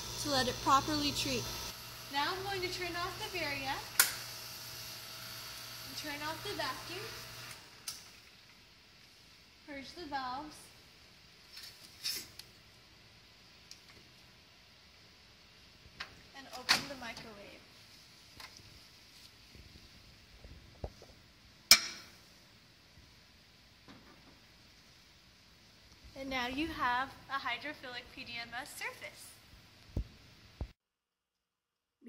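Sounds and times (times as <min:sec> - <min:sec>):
equipment humming: 0:00.0 - 0:08.0.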